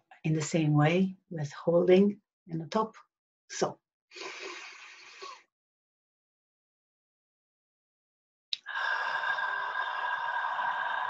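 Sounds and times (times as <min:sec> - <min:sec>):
woman inhaling deeply: 0:04.2 - 0:05.4, 0:08.6 - 0:11.0.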